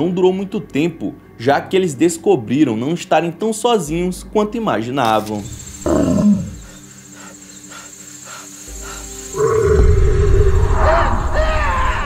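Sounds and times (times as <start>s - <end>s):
high wavering cries: 5.2s - 12.0s
deep rough growling roar: 9.4s - 11.4s.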